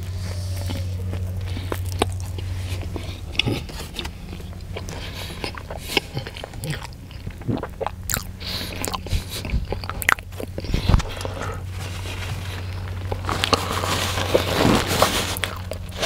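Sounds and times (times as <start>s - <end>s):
man biting and chewing food: 0.0s - 16.0s
steady low hum: 0.0s - 16.0s.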